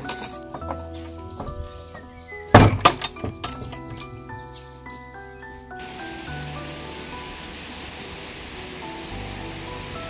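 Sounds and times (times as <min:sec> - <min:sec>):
chain latch clink: 0:00.0 - 0:01.2, 0:02.0 - 0:04.4
background music sustained tones: 0:00.0 - 0:10.0
wooden door knocking and rattling: 0:00.5 - 0:01.8, 0:02.5 - 0:04.2
heavy thunks: 0:02.5 - 0:03.9.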